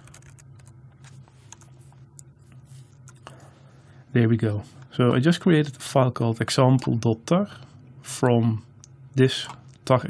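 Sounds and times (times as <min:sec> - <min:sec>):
keyboard typing: 0:00.0 - 0:01.7
faint low hum: 0:00.0 - 0:10.0.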